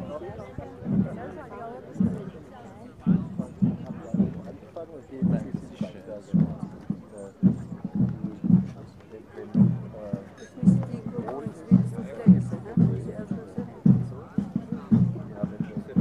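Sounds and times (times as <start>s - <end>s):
drum beaten in steady rhythm: 0.0s - 16.0s
voices talking: 0.0s - 16.0s.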